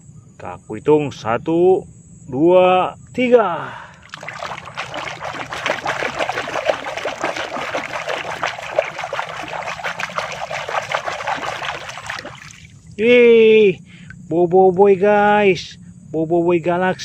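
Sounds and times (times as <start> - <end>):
water splashing in a bucket: 3.9 - 13.0.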